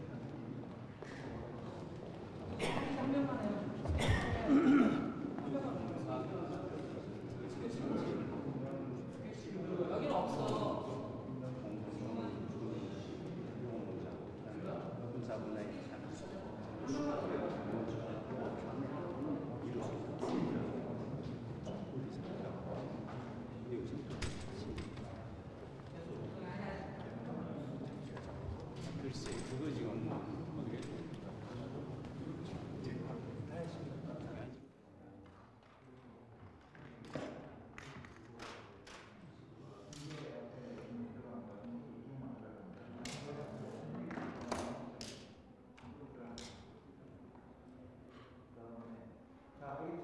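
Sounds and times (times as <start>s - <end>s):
murmur of voices: 0.0s - 50.0s.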